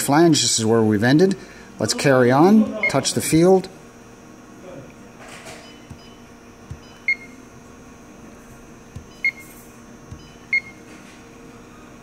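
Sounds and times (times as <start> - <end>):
steady low hum: 0.0 - 12.0
fingertip tapping screen: 5.8 - 7.3, 8.9 - 9.4, 10.1 - 10.8
short high electronic beeps: 9.1 - 9.6.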